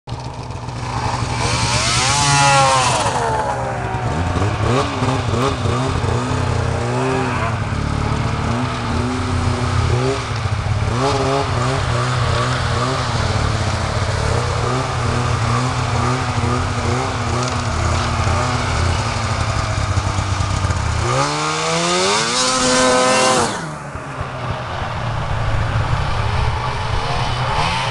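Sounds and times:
snowmobile engine revving: 0.1s - 27.9s
snowmobile speeding past: 0.1s - 27.9s.

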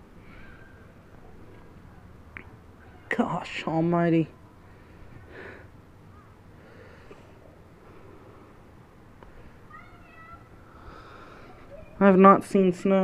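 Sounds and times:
distant children calling out: 0.2s - 12.3s.

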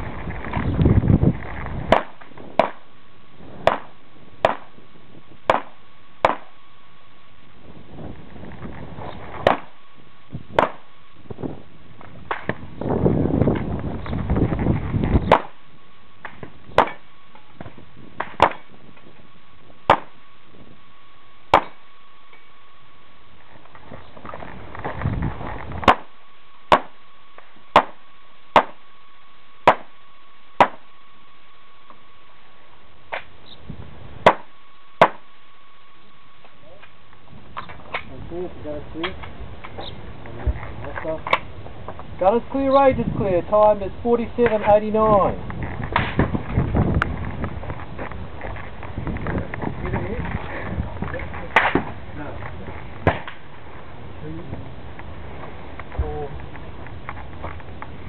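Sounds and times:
single gunshots: 1.9s - 2.9s, 3.6s - 4.8s, 5.5s - 6.6s, 15.3s - 15.6s, 16.7s - 17.0s, 25.8s - 26.1s, 26.7s - 27.0s, 27.7s - 28.8s, 29.6s - 30.0s, 34.2s - 35.3s.

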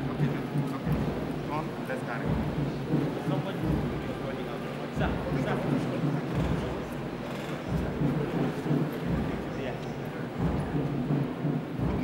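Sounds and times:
murmur of indoor crowd: 0.0s - 12.0s.

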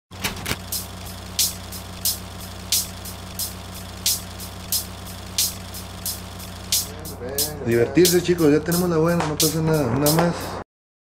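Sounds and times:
hissing crackle: 0.2s - 7.4s.

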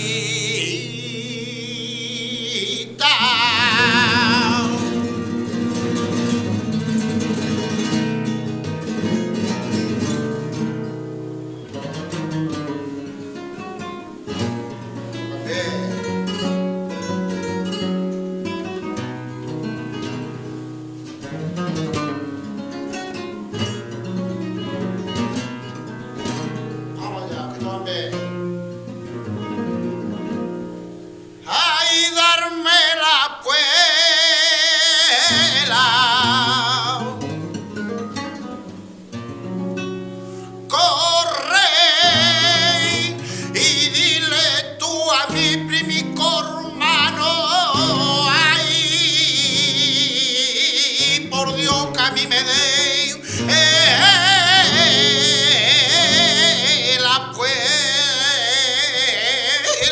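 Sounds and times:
man singing: 0.0s - 6.6s, 14.7s - 16.6s, 26.9s - 28.5s, 31.4s - 37.6s, 40.6s - 59.9s
flamenco guitar playing: 0.0s - 59.9s.

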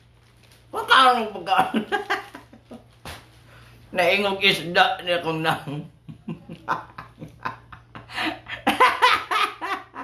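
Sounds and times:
man laughing: 6.1s - 10.0s.

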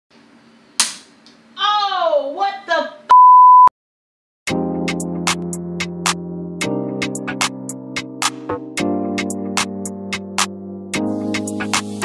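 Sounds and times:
person exclaiming: 1.6s - 2.6s
high-pitched censor beep: 3.1s - 3.7s.

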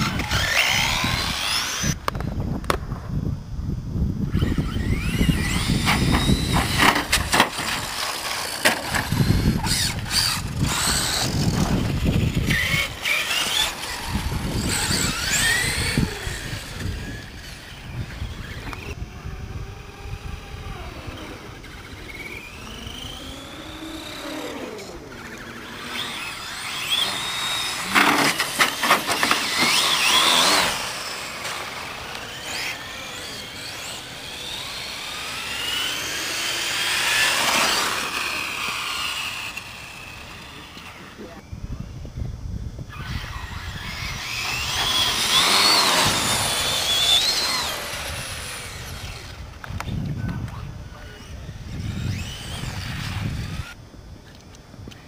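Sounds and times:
rc car motors whining: 0.0s - 2.8s, 4.0s - 55.0s.

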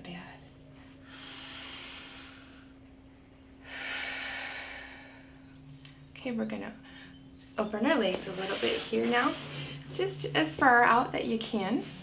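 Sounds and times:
woman breathing: 1.0s - 2.9s, 3.5s - 5.6s, 6.8s - 7.3s.

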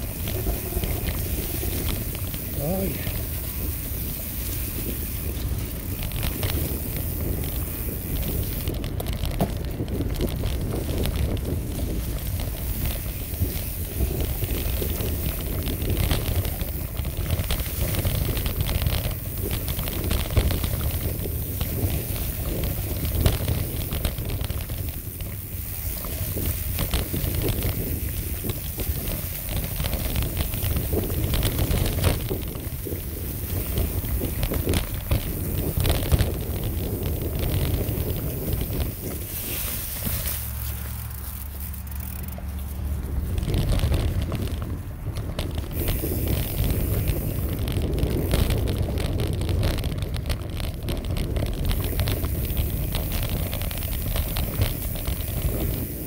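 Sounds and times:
wind buffeting microphone: 0.0s - 41.2s, 41.9s - 56.0s
bike clicks and knocks: 0.0s - 56.0s
tyres crackling through leaves: 0.0s - 56.0s.

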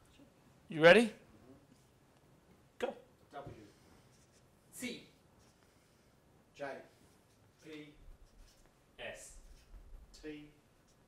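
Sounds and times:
marker scratching on paper: 7.5s - 8.8s.

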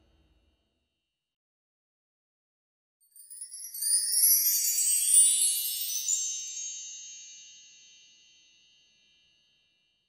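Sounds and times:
shimmering bell-like chime: 3.1s - 10.0s.

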